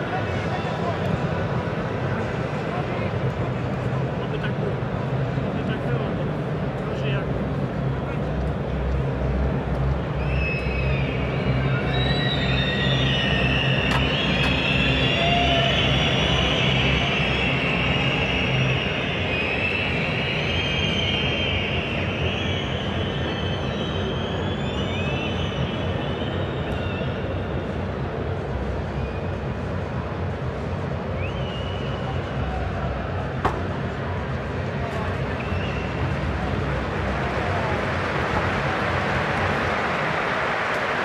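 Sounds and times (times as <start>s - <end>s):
low droning hum: 0.0s - 39.6s
stadium crowd voices: 0.0s - 41.0s
high wavering whistles: 10.2s - 27.7s, 31.1s - 32.6s.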